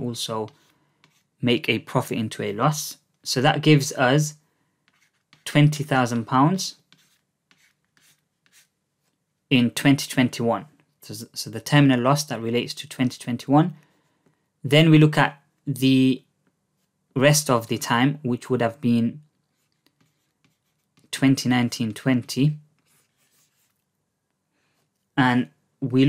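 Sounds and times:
pen scratching on paper: 0.5 - 1.4, 4.8 - 5.8, 6.8 - 9.1, 19.5 - 21.1, 22.8 - 23.8.

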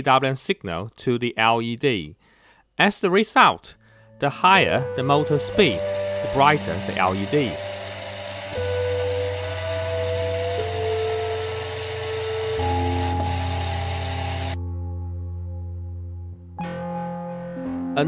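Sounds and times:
background music with held chords: 3.8 - 18.0
thin rising whine: 5.3 - 14.6
small gear motors whirring: 5.6 - 14.6.

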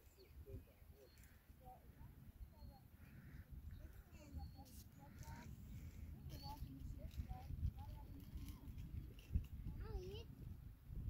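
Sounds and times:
distant bird calls: 0.0 - 7.6
low wind rumble on microphone: 1.9 - 11.0.

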